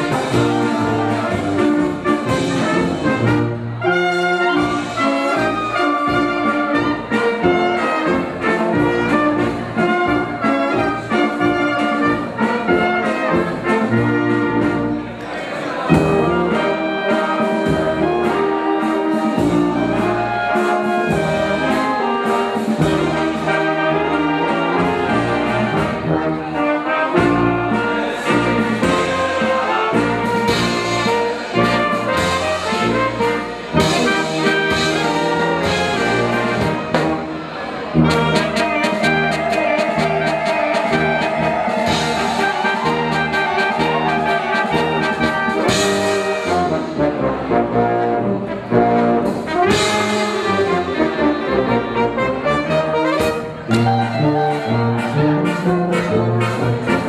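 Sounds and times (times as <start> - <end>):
brass band playing dance tune: 0.0 - 57.0.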